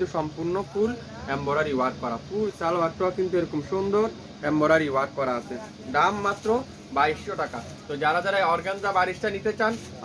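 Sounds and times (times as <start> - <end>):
man speaking: 0.0 - 10.0.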